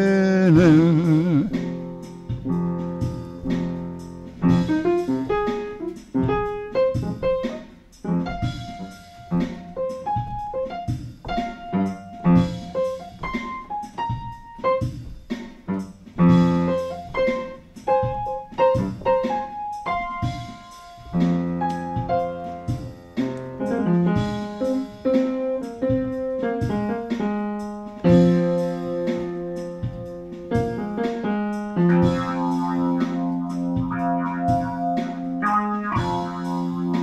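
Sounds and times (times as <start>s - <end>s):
bluesy piano playing: 0.0s - 37.0s.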